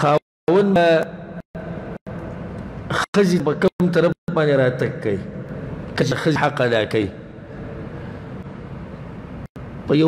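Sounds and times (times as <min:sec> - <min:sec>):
steady background hum and hiss: 0:01.6 - 0:10.0.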